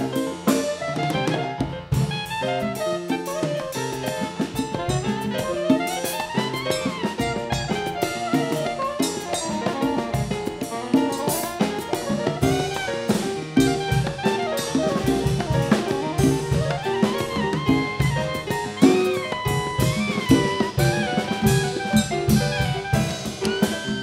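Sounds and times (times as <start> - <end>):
jazz band with drums: 0.0 - 24.0
soprano saxophone soloing: 0.0 - 24.0.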